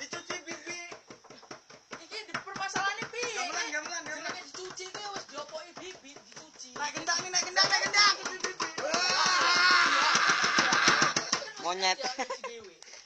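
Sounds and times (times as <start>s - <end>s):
rapid irregular tapping and clicking: 0.0s - 11.6s.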